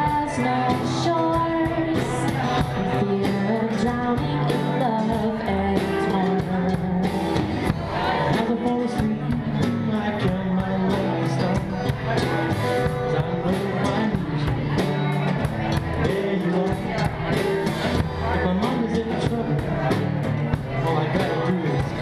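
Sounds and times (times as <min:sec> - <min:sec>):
person singing: 0:00.0 - 0:19.9
drum kit: 0:00.0 - 0:22.0
strummed acoustic guitar: 0:00.0 - 0:22.0.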